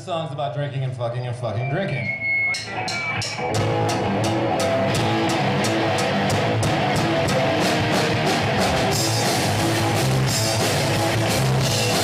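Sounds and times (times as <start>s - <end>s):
distorted electric guitar: 1.5s - 12.0s
punk rock band playing live: 2.0s - 12.0s
drum kit fast steady beat: 2.6s - 12.0s.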